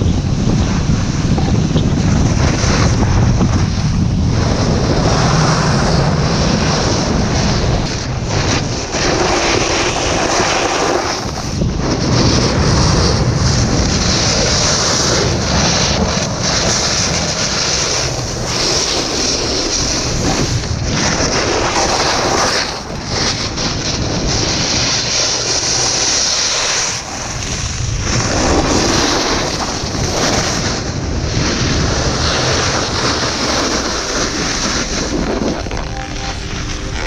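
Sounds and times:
wind buffeting microphone: 0:00.0 - 0:37.0
snowboard scraping icy snow: 0:02.0 - 0:37.0.

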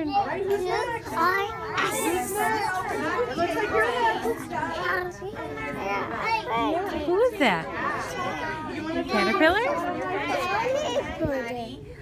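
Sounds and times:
children's chatter and calls: 0:00.0 - 0:12.0
crowd talking: 0:00.0 - 0:12.0.

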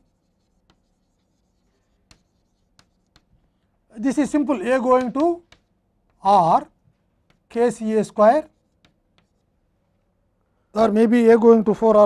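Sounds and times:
chalk scratching on blackboard: 0:00.0 - 0:03.4, 0:04.1 - 0:05.8, 0:07.3 - 0:09.5
chalk tapping on board: 0:00.0 - 0:03.5, 0:04.1 - 0:06.3, 0:07.2 - 0:09.5.

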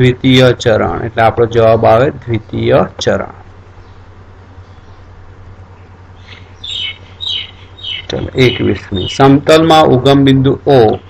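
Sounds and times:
bird chirping: 0:03.7 - 0:09.4.

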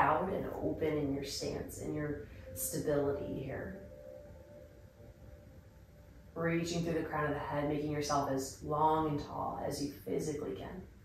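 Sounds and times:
faint steady hum: 0:00.0 - 0:11.0
thin held tone: 0:02.1 - 0:06.7.

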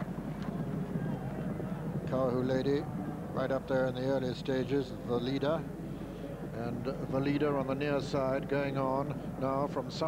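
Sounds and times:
low broadcast background noise: 0:00.0 - 0:10.0.

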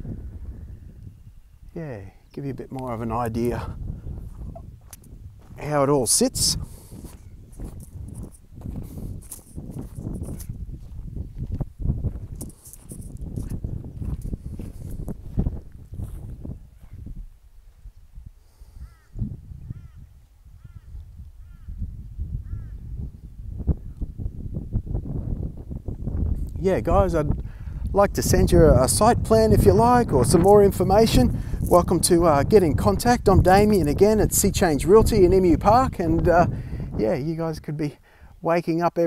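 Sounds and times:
wind buffeting microphone: 0:00.0 - 0:38.7.

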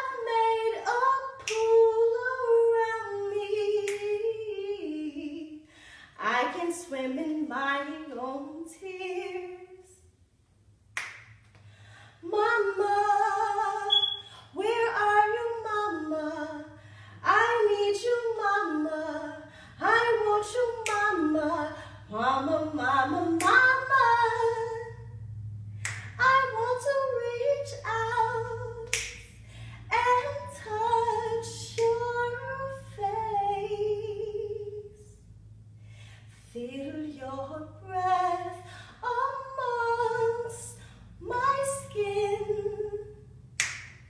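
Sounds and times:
woman singing unaccompanied: 0:00.0 - 0:05.6, 0:06.2 - 0:10.0, 0:12.2 - 0:25.0, 0:26.1 - 0:29.0, 0:29.9 - 0:35.1, 0:36.5 - 0:43.2.

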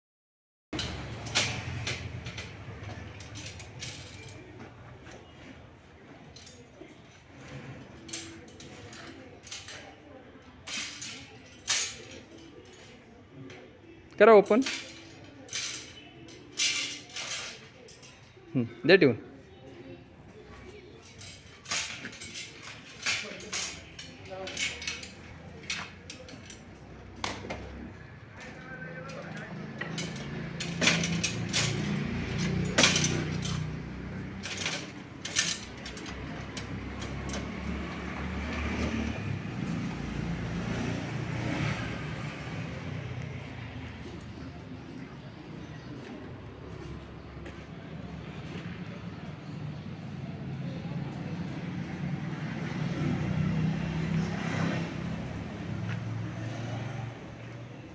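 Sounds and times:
metal frame and chains clanking: 0:00.8 - 0:18.8, 0:20.2 - 0:46.2, 0:50.6 - 0:57.9.

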